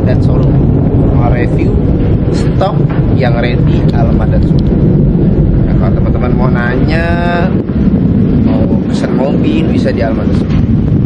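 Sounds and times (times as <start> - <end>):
man talking: 0.0 - 1.8, 2.4 - 4.7, 5.6 - 7.6, 8.4 - 10.5
wind buffeting microphone: 0.0 - 11.0.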